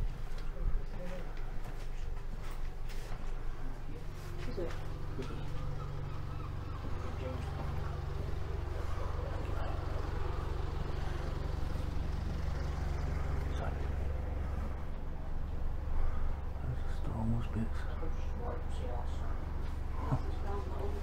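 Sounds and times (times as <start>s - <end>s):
faint voices murmuring: 0.0s - 21.0s
road traffic rumble: 0.0s - 21.0s.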